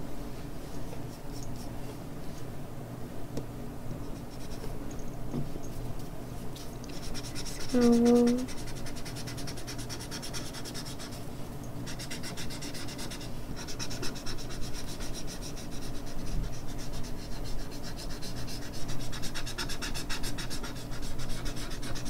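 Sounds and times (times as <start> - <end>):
blending stump rubbing on paper: 6.9 - 11.2, 11.9 - 22.0.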